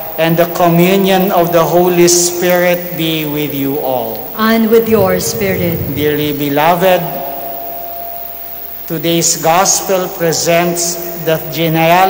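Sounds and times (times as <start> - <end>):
sound system hiss and fan noise: 4.7 - 7.6
person speaking: 4.8 - 7.1
faint steady high tone: 4.9 - 7.2.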